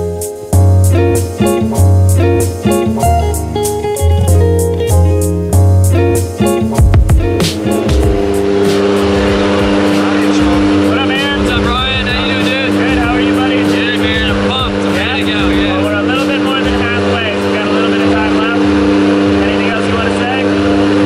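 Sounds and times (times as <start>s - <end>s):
propeller aircraft engines droning: 0.0s - 21.0s
voices in a cabin: 10.0s - 18.7s.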